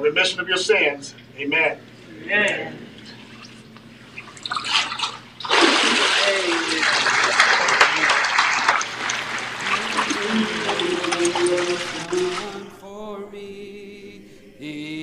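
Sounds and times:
water splashing and churning: 3.0 - 12.7
water streaming off robe: 3.0 - 12.7.

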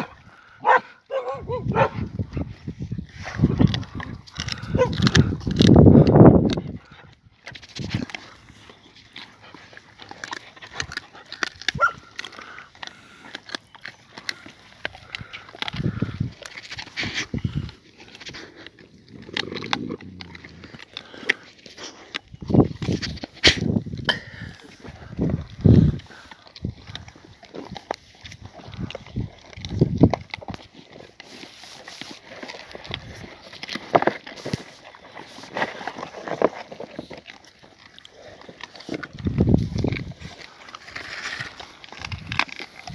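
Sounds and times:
dogs gnawing bones: 0.0 - 42.9
dog squealing: 4.6 - 5.0.

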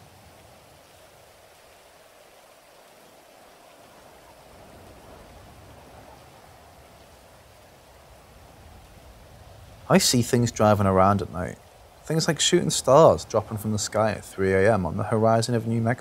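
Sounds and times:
rain-like hiss: 0.0 - 16.0.

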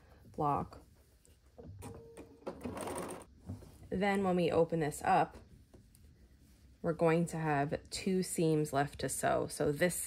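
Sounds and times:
sewing machine stitching: 2.6 - 3.3.

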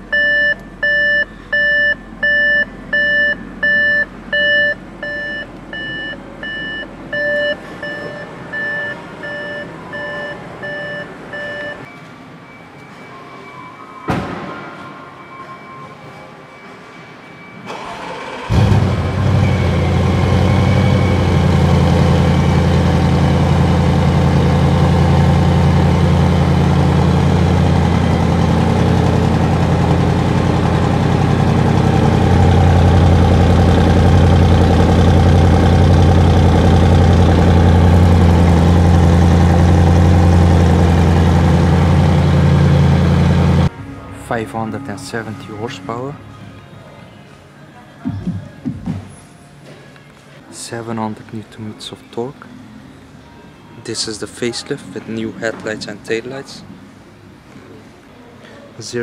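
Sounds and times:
car engine starting and idling: 17.6 - 43.8.

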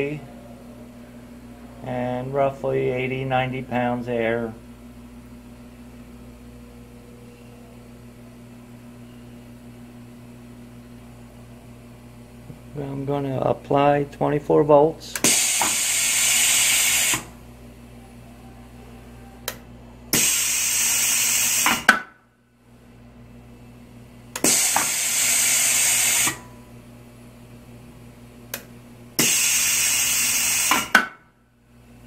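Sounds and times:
compressed air hiss: 15.2 - 17.2, 20.2 - 21.8, 24.4 - 26.4, 29.2 - 30.9
valve click: 28.5 - 31.1.

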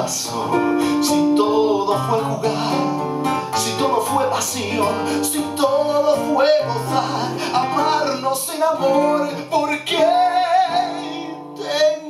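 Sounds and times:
classical guitars playing: 0.0 - 12.0
man singing: 0.0 - 12.0.

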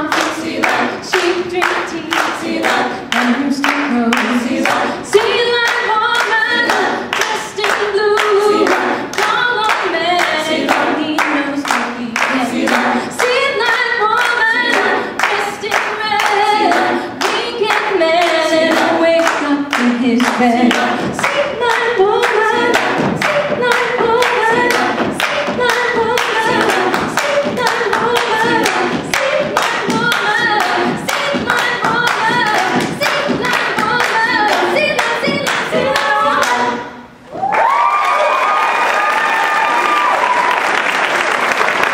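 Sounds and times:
hands clapping in rhythm: 0.0 - 36.8, 37.5 - 41.9
woman singing lead: 0.0 - 37.0
a cappella group singing: 0.0 - 37.2
audience applause: 37.3 - 41.9.

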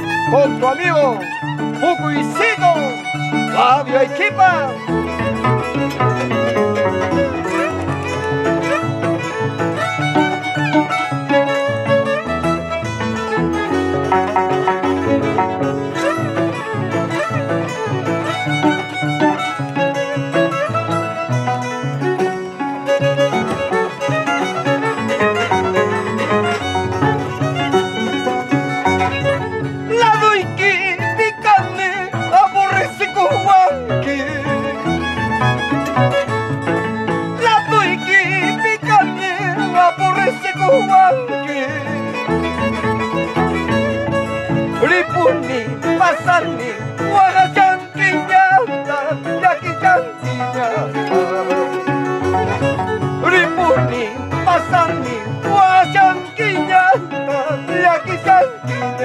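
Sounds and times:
harp plucking: 0.0 - 59.0
violin melody: 0.0 - 59.0.

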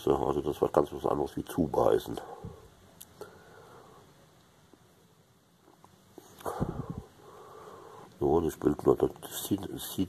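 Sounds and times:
faint soft clicks: 3.0 - 3.3.

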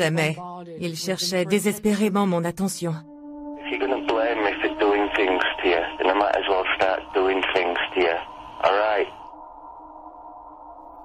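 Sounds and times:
speech over telephone line: 0.0 - 3.0, 3.6 - 9.2
faint steady hum: 3.7 - 11.0.

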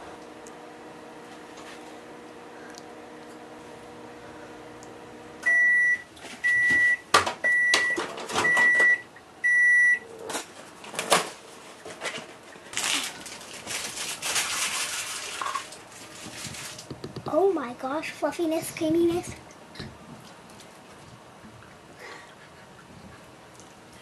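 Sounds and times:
microwave oven humming: 0.0 - 24.0
rustling: 11.5 - 16.9.

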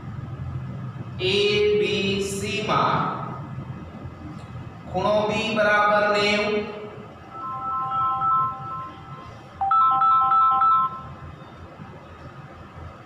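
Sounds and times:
electronic ringtone melody: 7.3 - 11.2.

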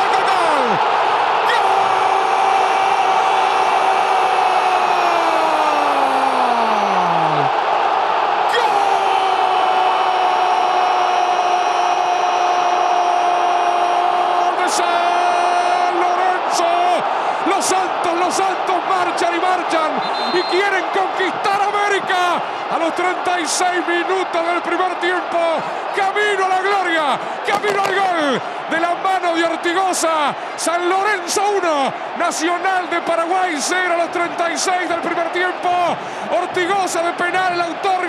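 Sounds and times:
stadium crowd cheering: 0.0 - 38.0.

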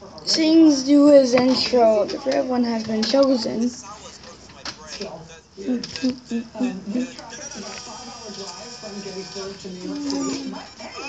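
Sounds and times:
faint background music: 0.0 - 11.0
man's voice from video: 0.0 - 11.0
people talking: 0.0 - 11.0.

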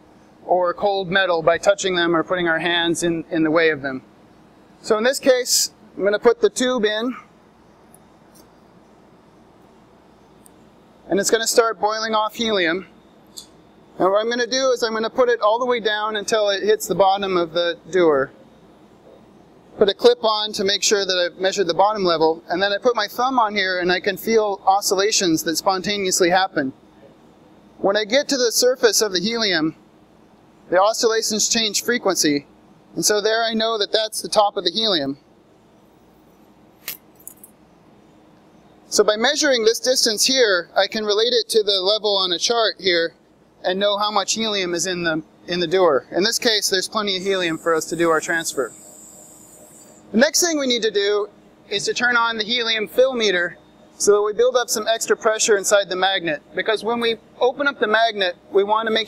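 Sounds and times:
low room hum: 0.0 - 59.0.

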